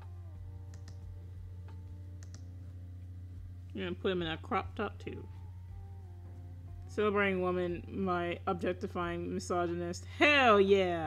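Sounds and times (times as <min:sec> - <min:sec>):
steady low hum: 0:00.0 - 0:11.0
light computer clicks: 0:00.7 - 0:01.1, 0:01.7 - 0:02.5.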